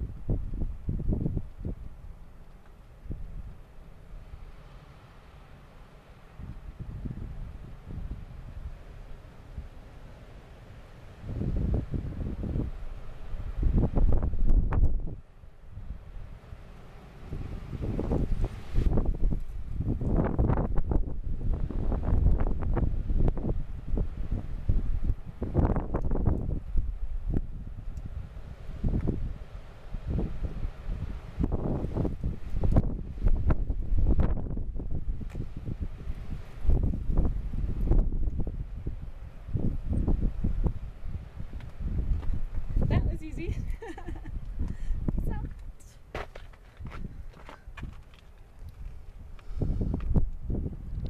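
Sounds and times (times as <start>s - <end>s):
wind buffeting microphone: 0.0s - 4.4s, 6.4s - 9.8s, 11.1s - 16.6s, 17.2s - 51.0s.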